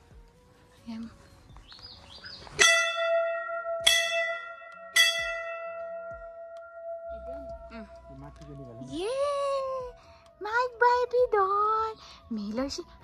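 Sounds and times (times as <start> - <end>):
brass bell ringing: 2.6 - 8.0.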